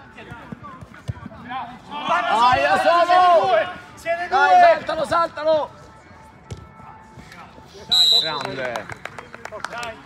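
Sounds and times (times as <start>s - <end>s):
football kicked on turf: 6.4s - 6.7s
shrill whistle: 7.9s - 8.6s.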